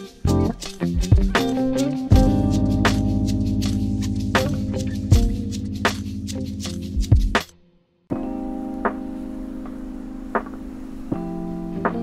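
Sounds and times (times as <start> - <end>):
mellow jazzhop chords: 0.0 - 7.5, 8.1 - 12.0.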